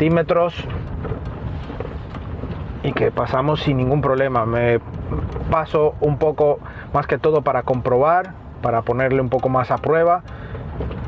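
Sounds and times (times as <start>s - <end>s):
car cabin engine rumble: 0.0s - 11.0s.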